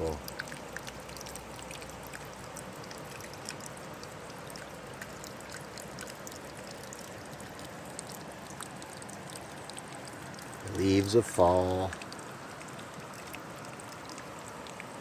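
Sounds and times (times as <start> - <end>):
water drips: 0.0 - 15.0
water trickling over rocks: 0.0 - 15.0.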